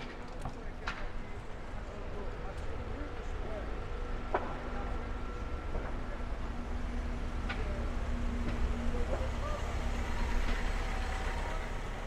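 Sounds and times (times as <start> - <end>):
bus engine rumble passing: 0.0 - 12.0
traffic noise: 0.0 - 12.0.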